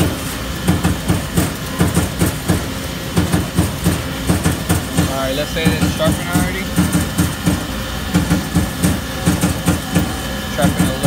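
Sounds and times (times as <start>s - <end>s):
coolant hiss: 0.0s - 11.0s
grinding machine pulsing: 0.0s - 11.0s.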